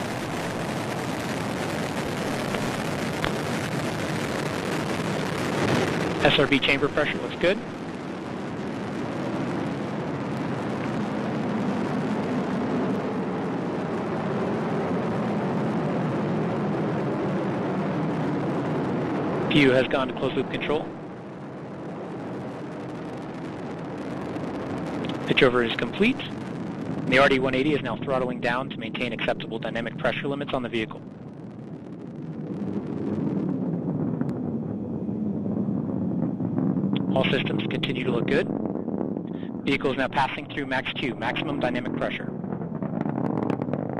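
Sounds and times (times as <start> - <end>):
rocket engine rumble: 0.0 - 43.9.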